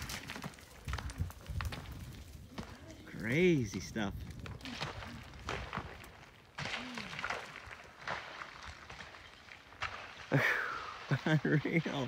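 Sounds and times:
rock bouncing and crashing downhill: 0:00.0 - 0:12.0.

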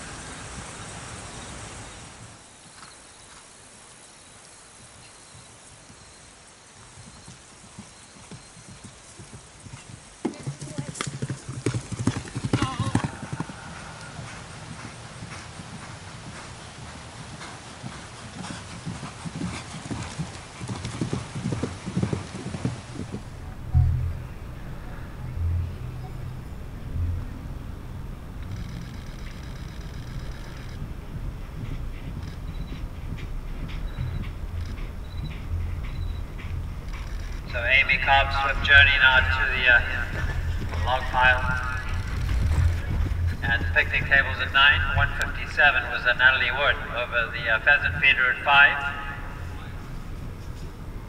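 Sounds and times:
horse hoofbeats galloping on grass: 0:02.2 - 0:51.0
voices: 0:22.9 - 0:51.0.

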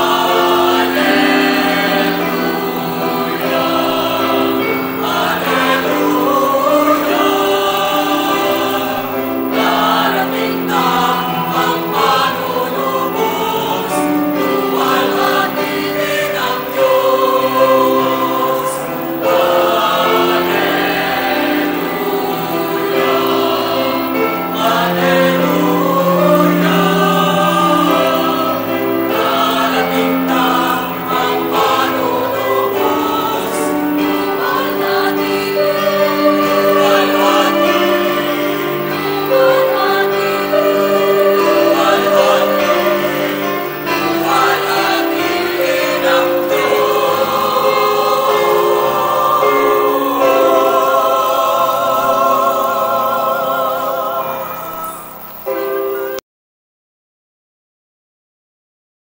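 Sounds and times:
choir singing sacred music: 0:00.0 - 0:56.2.

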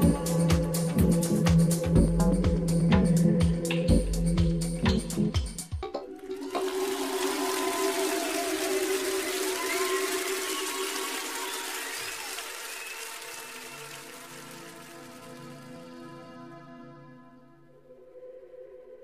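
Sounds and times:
electronic drum beat: 0:00.0 - 0:11.4.

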